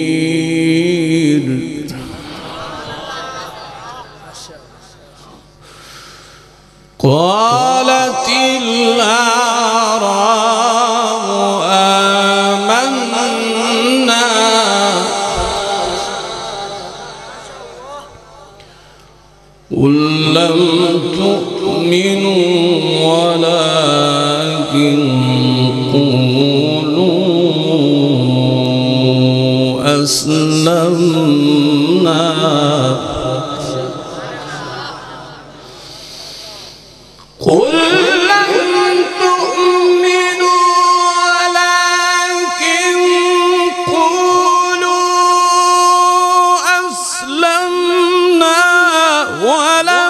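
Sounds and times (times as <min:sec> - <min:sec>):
man reciting melodically: 0:00.0 - 0:05.9, 0:06.6 - 0:50.0.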